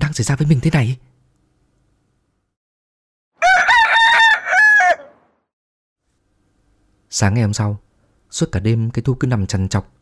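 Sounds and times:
rooster crowing: 3.4 - 5.4.

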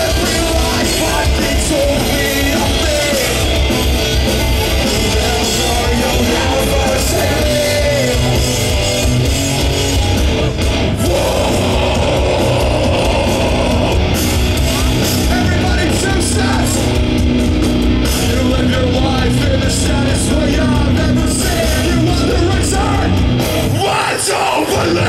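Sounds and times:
person singing: 0.0 - 8.6, 11.0 - 14.4
heavy rock band playing: 0.0 - 25.0.

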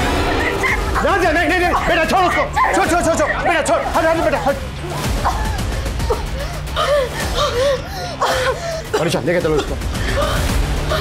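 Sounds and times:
girl wailing: 5.0 - 8.6.

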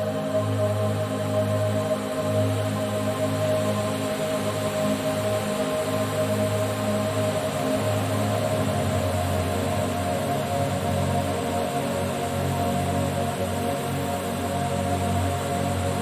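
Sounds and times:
slow ambient music: 0.0 - 16.0.

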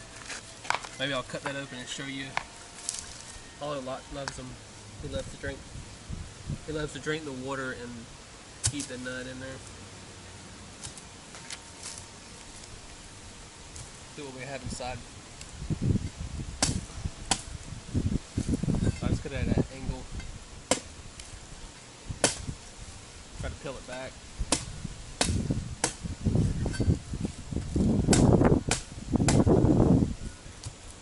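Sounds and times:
machete chopping coconut husk: 8.6 - 9.0, 10.8 - 11.0, 16.6 - 17.5, 20.7 - 21.3, 22.2 - 22.5, 23.8 - 26.1, 28.1 - 29.5.

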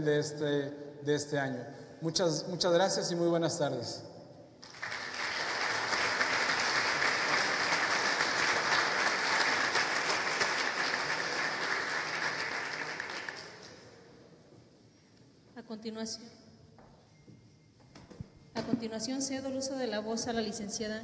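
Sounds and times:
audience applauding: 4.6 - 13.9.

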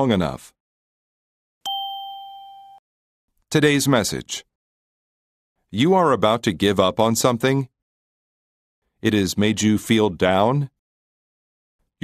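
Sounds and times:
bell-like chime: 1.7 - 2.8.

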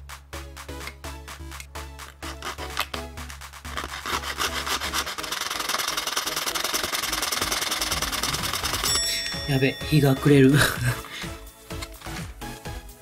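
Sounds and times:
background music: 0.0 - 13.0
hand saw cutting plastic: 2.1 - 3.0, 3.7 - 8.9.

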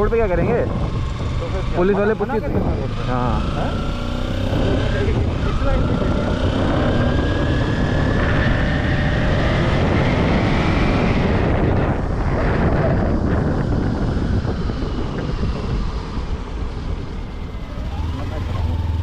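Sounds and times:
motorcycle engine accelerating: 0.0 - 19.0
wind rushing over microphone: 0.0 - 19.0.

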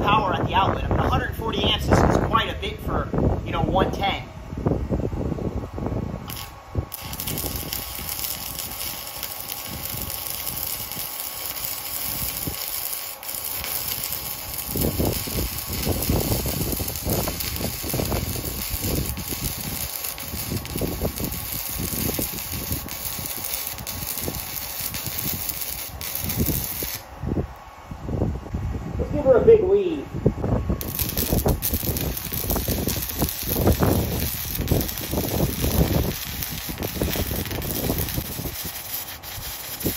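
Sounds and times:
welding arc crackling and hissing: 6.2 - 27.1, 30.8 - 39.9.

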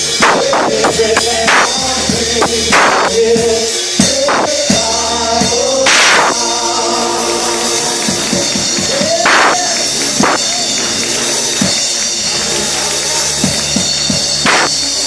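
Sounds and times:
drum kit cymbal crashes: 0.0 - 15.0
keyboard sustained chords: 0.0 - 15.0.

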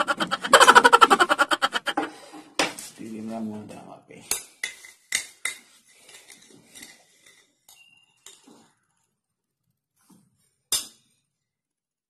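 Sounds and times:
metal spoon clinking in glass jar: 6.2 - 8.4.

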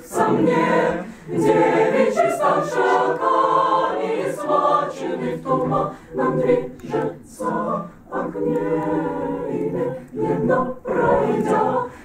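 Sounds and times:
mixed choir singing a cappella: 0.0 - 12.0.

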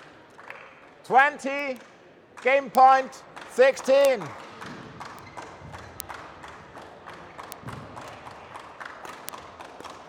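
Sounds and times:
sports hall background noise: 0.0 - 10.0.

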